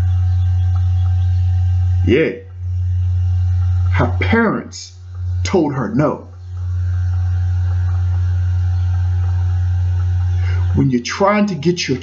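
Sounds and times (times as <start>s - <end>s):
faint higher tones: 0.0s - 12.0s
loud low hum: 0.0s - 12.0s.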